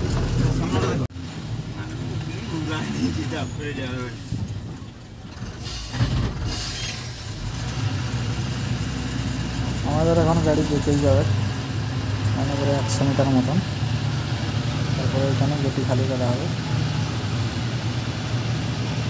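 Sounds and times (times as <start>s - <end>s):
diesel truck engine rumble: 0.0s - 19.0s.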